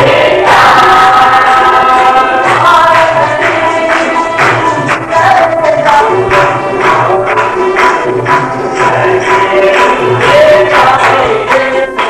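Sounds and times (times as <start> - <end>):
group singing devotional song: 0.0 - 12.0.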